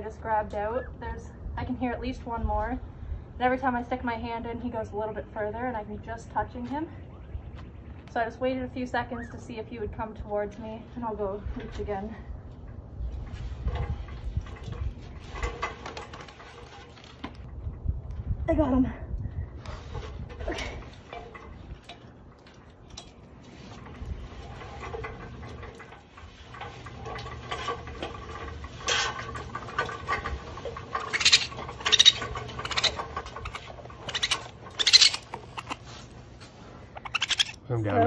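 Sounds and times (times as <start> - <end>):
ladder clattering and knocking: 13.4 - 17.4, 20.3 - 34.8
faint baby animal sounds: 37.0 - 37.7.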